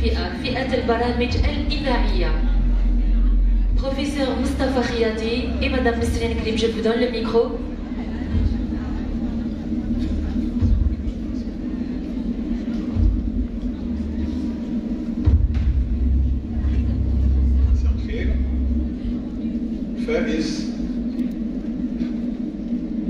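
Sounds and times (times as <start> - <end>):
faint voices: 0.0 - 23.0
low pa hum: 0.0 - 23.0.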